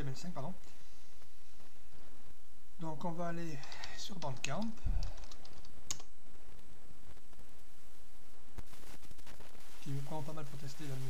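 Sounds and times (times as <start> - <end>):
computer keyboard typing: 3.6 - 6.1.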